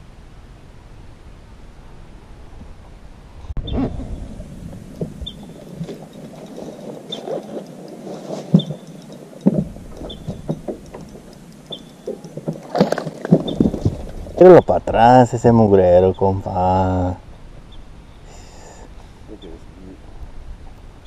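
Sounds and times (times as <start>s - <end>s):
knocks and thumps of gear: 12.0s - 14.3s.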